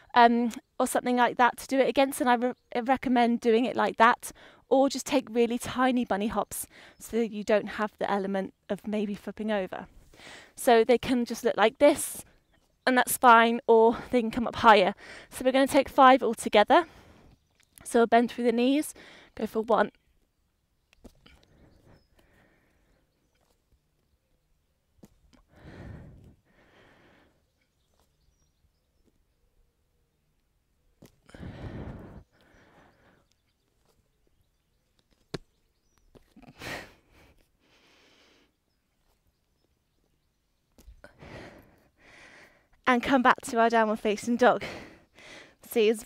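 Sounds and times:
woman breathing hard: 10.1s - 10.6s, 21.2s - 23.0s, 25.4s - 27.4s, 31.2s - 33.3s, 41.0s - 42.8s, 44.6s - 45.6s.

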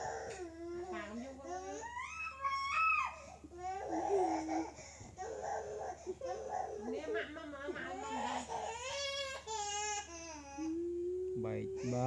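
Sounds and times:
high-pitched voice crying: 10.6s - 12.0s.

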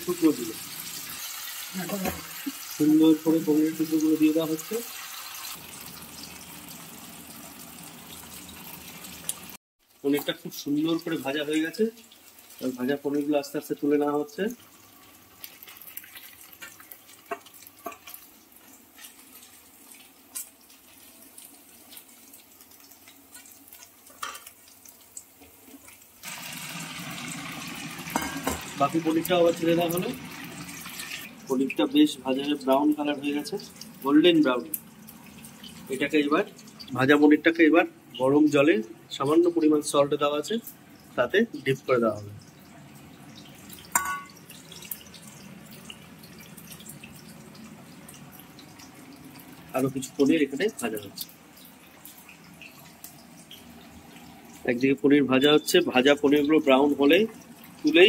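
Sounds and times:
food sizzling in hot oil: 0.0s - 58.0s
pan clinking against pot: 28.1s - 28.7s, 43.9s - 44.4s.

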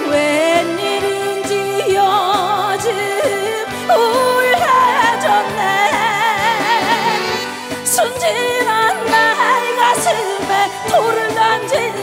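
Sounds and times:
instrumental backing: 0.0s - 12.0s
woman singing into microphone: 0.0s - 12.0s.

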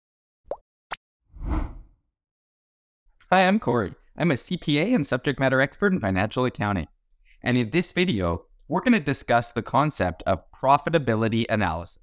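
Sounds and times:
quick upward sweep: 1.4s - 1.8s
whoosh with low rumble: 1.4s - 1.8s.

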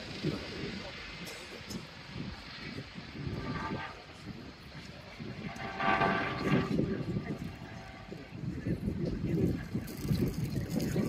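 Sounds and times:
helicopter rotor rumble: 0.0s - 11.0s
wind on microphone: 1.6s - 11.0s.

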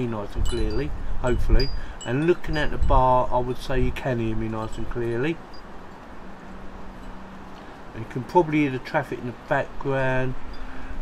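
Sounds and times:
traffic rumble: 0.0s - 11.0s
wind: 0.0s - 11.0s
rain: 5.1s - 11.0s.

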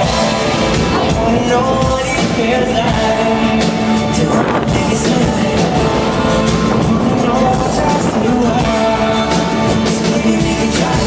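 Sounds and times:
live pop rock band: 0.0s - 11.0s.

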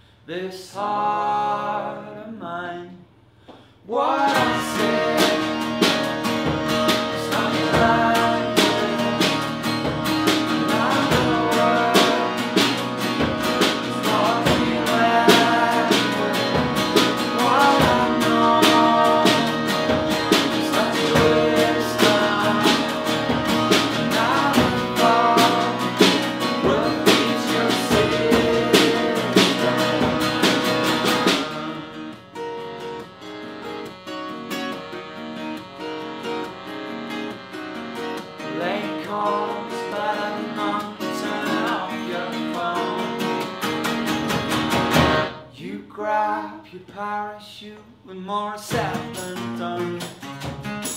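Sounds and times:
voices singing along: 3.8s - 32.4s, 38.4s - 43.6s
strummed acoustic guitars: 4.0s - 46.4s, 48.6s - 50.9s
accordion: 4.2s - 45.4s
drums: 4.3s - 31.8s, 43.2s - 45.4s, 48.7s - 50.9s
tambourine: 48.9s - 50.9s.

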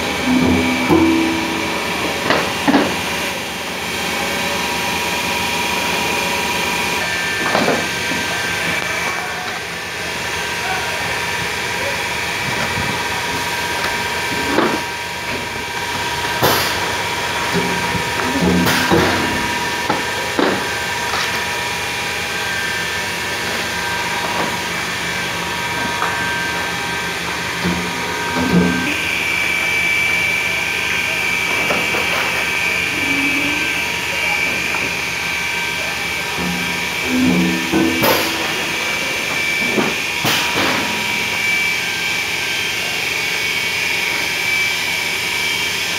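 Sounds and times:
steady high whine: 0.0s - 11.4s, 15.2s - 45.6s
machinery humming: 0.0s - 45.9s.

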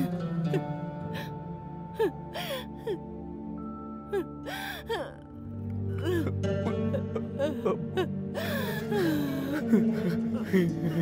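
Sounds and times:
slow film score: 0.0s - 11.0s
person gasping and whimpering: 2.0s - 3.0s, 4.1s - 5.3s, 5.9s - 10.9s.

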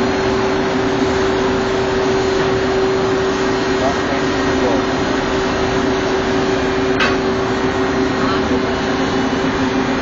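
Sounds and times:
ship machinery drone: 0.0s - 10.0s.

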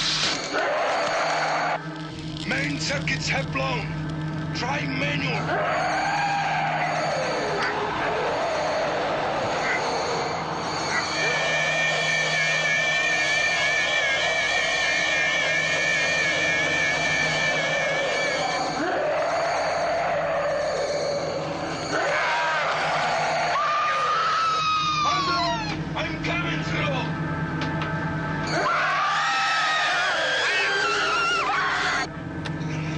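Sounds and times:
electronic monster shrieking: 0.0s - 1.8s, 5.0s - 25.8s, 28.5s - 32.1s
steady low hum: 0.0s - 32.9s
warbling two-tone whine: 0.0s - 32.9s.

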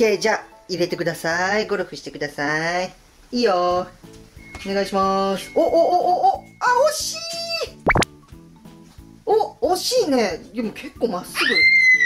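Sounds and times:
light background music: 0.0s - 12.0s
rising cartoon sweep effect: 7.8s - 8.1s.

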